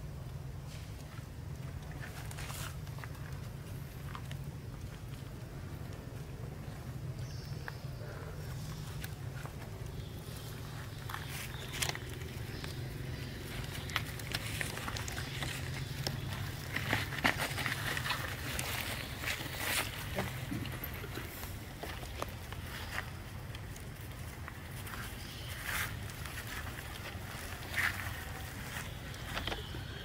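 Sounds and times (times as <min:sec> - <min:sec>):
rustling in dry leaves: 0:00.6 - 0:06.9, 0:07.9 - 0:30.0.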